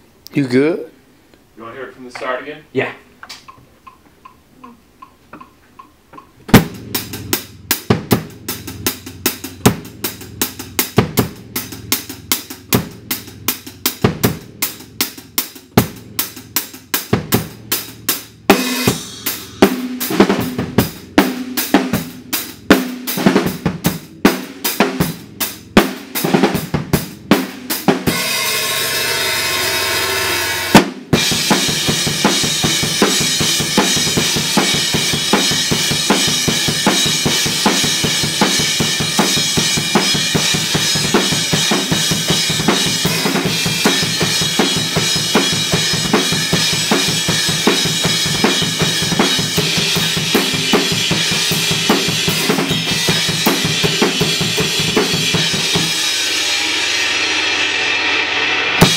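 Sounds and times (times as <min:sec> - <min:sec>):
kick and snare drum hits: 0:06.4 - 0:07.0
cymbal wash: 0:18.6 - 0:21.0, 0:28.0 - 0:58.9.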